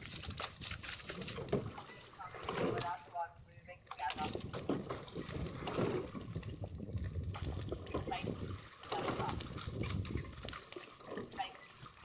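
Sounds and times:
oar blades splashing water: 0.0s - 3.2s, 3.9s - 12.0s
wind rumble on microphone: 0.0s - 12.0s.

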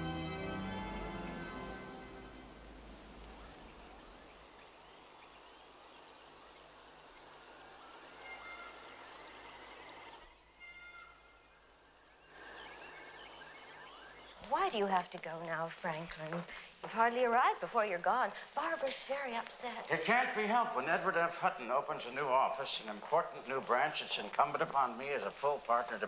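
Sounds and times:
music: 0.0s - 2.9s
faint outdoor ambience: 0.0s - 26.0s
bird chirps: 3.0s - 14.7s.

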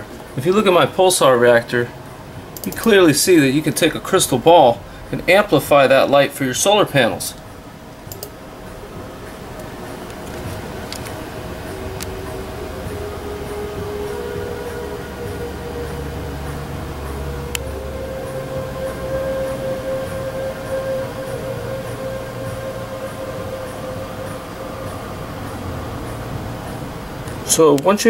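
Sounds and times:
low synthesized drone: 0.0s - 27.7s
higher humming tones: 0.0s - 28.0s.

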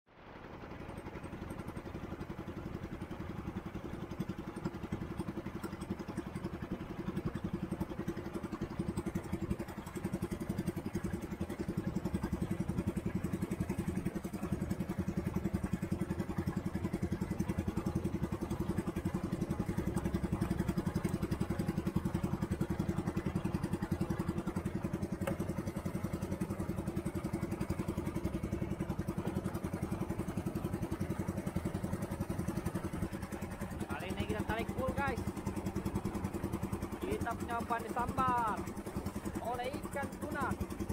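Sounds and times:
boat engine running: 0.1s - 40.9s
water rushing from wake: 0.1s - 40.9s.

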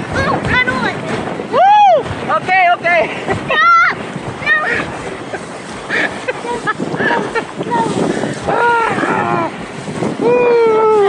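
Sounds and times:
water rushing: 0.0s - 11.0s
wind: 0.0s - 11.0s
person yelling: 1.5s - 2.1s, 3.5s - 4.8s, 7.8s - 9.6s, 10.2s - 11.0s.

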